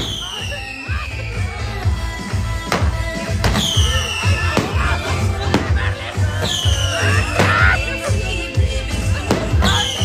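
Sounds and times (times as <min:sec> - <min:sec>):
fireworks bangs: 0:00.0 - 0:01.0, 0:02.6 - 0:07.7
falling firework whistle: 0:00.0 - 0:01.8, 0:03.4 - 0:05.2, 0:06.4 - 0:07.9.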